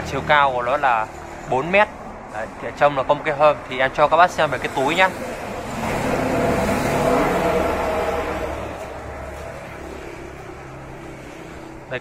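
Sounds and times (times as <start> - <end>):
motor vehicle passing by: 0.0 - 12.0.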